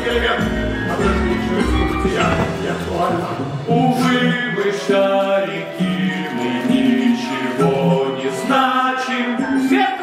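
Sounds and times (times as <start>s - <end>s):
men singing together: 0.0s - 10.0s.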